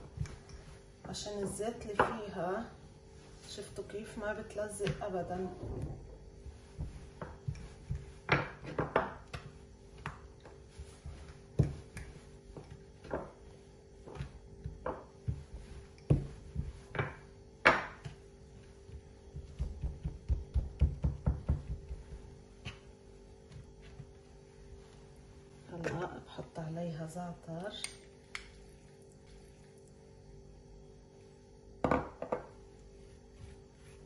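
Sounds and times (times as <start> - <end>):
dough worked on wooden board: 0.0 - 34.0
faint steady hum: 0.0 - 34.0
rolling pin thumping board: 19.3 - 22.8.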